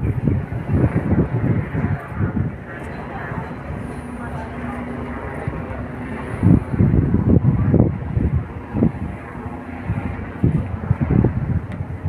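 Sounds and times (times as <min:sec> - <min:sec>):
steady low drone: 0:00.0 - 0:12.0
voices talking: 0:00.1 - 0:10.8.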